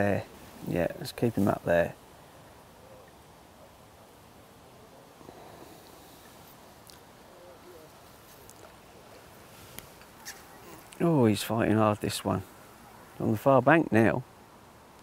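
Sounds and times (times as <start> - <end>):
distant wavering calls: 2.1 - 11.0, 12.4 - 13.2.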